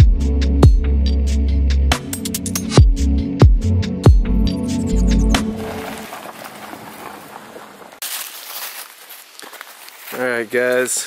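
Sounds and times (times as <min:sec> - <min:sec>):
footsteps crunching on gravel: 0:05.4 - 0:11.0.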